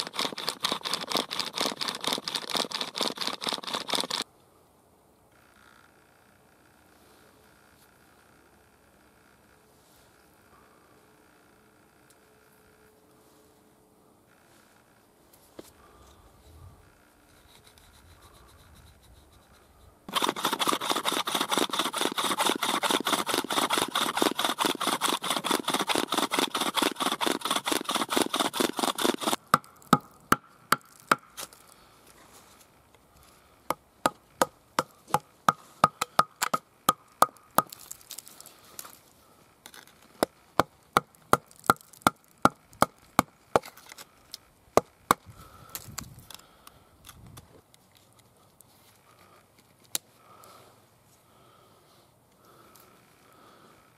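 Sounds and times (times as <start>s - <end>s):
stone bit grating on antler: 0.0s - 4.2s, 17.3s - 30.1s.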